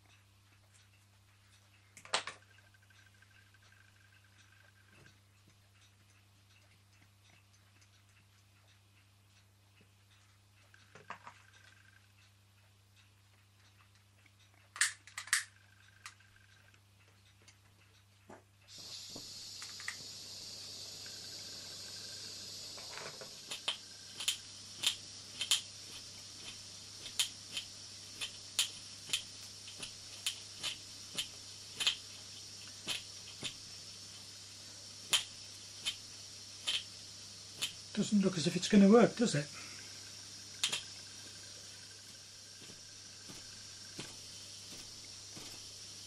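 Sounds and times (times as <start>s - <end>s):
lighter clicks: 14.8s - 16.2s, 18.7s - 34.4s, 35.0s - 37.9s, 40.1s - 41.8s
gas burner hissing: 18.7s - 46.0s.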